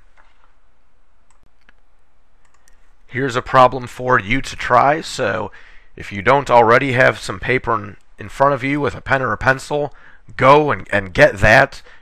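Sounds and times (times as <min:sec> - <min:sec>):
steady low hum: 0:00.0 - 0:12.0
faint sharp clicks: 0:01.3 - 0:02.8.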